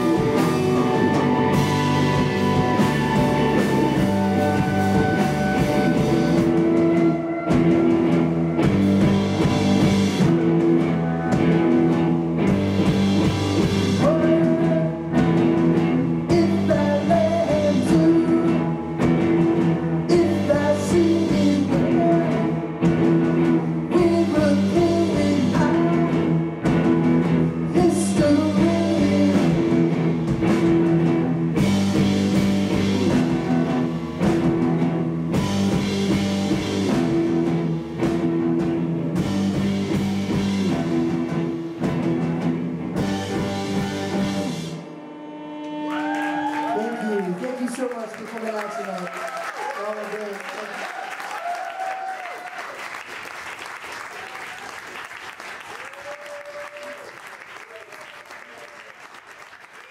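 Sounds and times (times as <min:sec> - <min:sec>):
live rock band playing: 0:00.0 - 0:47.2
person singing: 0:13.9 - 0:23.2, 0:23.8 - 0:26.5, 0:27.6 - 0:30.2, 0:32.9 - 0:34.6.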